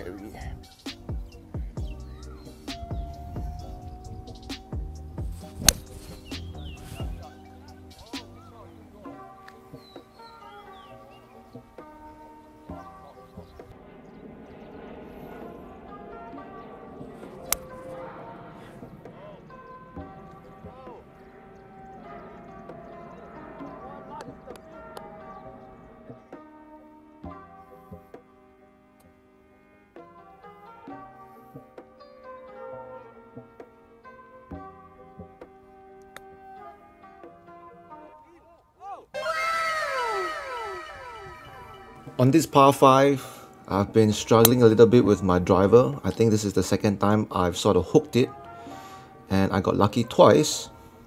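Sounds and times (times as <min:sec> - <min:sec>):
background music: 0:00.0 - 0:51.0
golf club striking ball: 0:05.4 - 0:06.8
downward sliding tone with echoes: 0:39.2 - 0:42.8.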